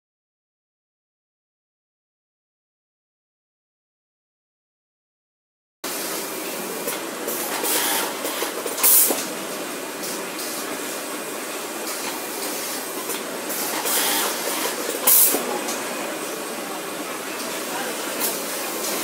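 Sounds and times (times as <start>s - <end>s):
sewing machine airy rushing: 5.9s - 19.0s
pneumatic air blasts: 6.9s - 9.3s, 11.9s - 15.5s.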